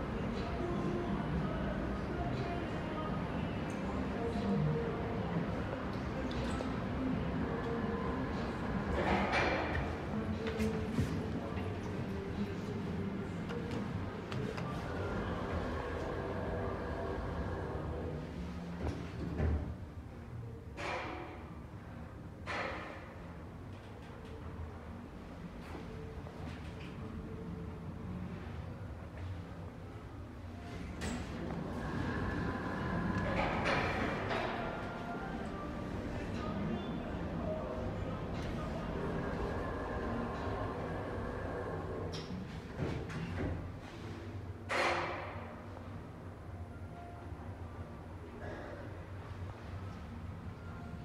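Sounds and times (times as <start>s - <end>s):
steady background hum: 0.0s - 51.0s
lift sliding doors moving: 13.3s - 19.8s, 30.7s - 45.5s
elevator car rumbling: 14.6s - 18.4s, 31.2s - 42.1s.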